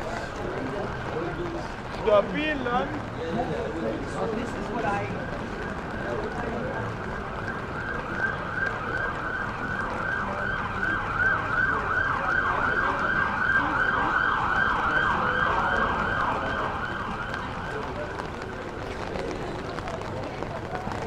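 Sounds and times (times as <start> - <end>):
emergency siren yelping: 5.1 - 18.7.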